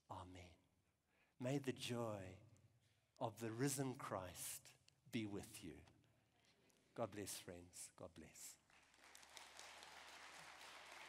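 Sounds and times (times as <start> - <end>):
faint crowd applause: 8.7 - 11.0.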